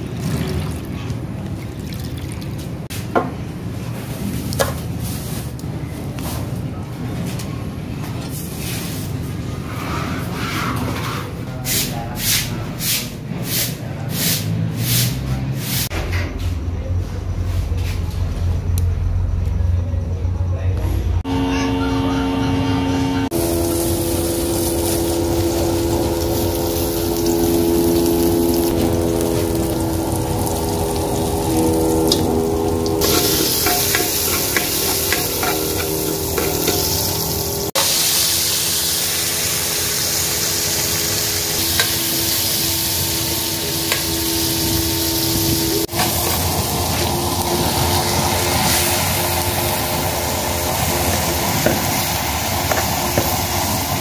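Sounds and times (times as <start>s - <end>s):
steady droning hum: 18.7s - 54.0s
food sizzling in a pot: 23.3s - 54.0s.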